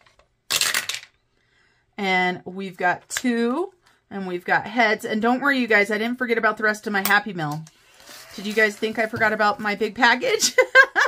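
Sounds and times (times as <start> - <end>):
dice rattling in tray: 0.5 - 1.1
dice clattering through wooden tower: 0.5 - 1.2.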